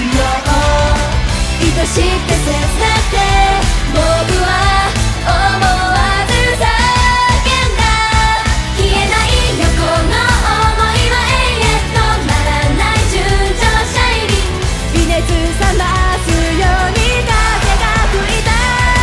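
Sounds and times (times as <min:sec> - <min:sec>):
female group singing pop song: 0:00.0 - 0:19.0
loud backing music with beat: 0:00.0 - 0:19.0.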